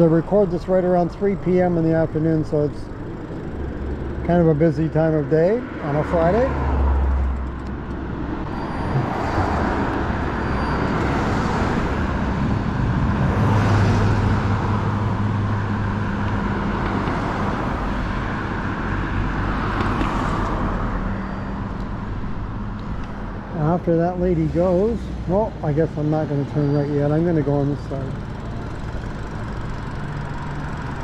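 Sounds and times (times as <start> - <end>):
cars passing: 0.0 - 31.0
road noise rushing: 0.0 - 31.0.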